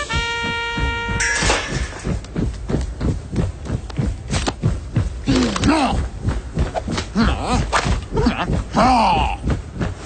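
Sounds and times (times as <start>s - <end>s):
held brass note: 0.0s - 2.0s.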